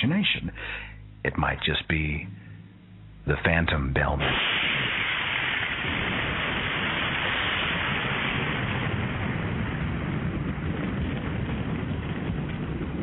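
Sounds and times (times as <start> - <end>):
loud steady rushing hiss: 0.0 - 11.4
low rumbling: 0.0 - 13.0.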